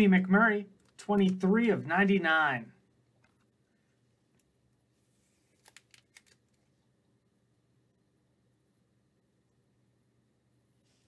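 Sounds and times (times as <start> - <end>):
faint plastic clicks: 5.5 - 6.9
low steady hum: 6.3 - 11.0.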